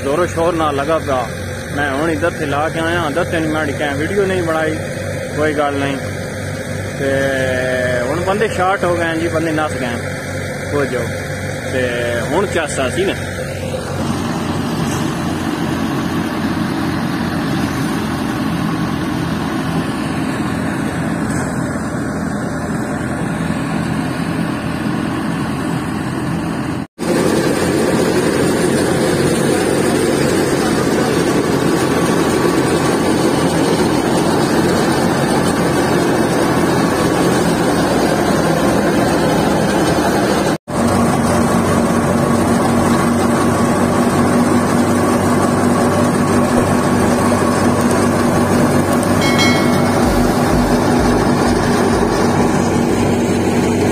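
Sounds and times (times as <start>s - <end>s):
wheat thresher running: 0.0s - 53.9s
steady hum: 46.2s - 53.9s.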